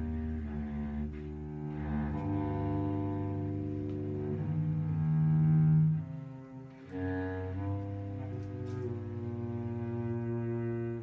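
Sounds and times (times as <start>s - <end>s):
bass clarinet: 0.0s - 11.0s
cello: 0.0s - 11.0s.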